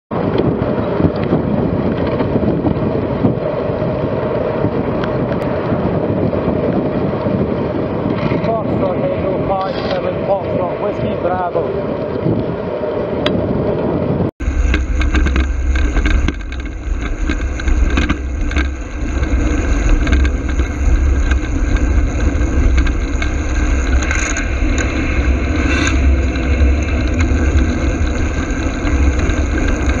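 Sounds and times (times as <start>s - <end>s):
road noise: 0.1s - 30.0s
wind rumble on microphone: 0.1s - 30.0s.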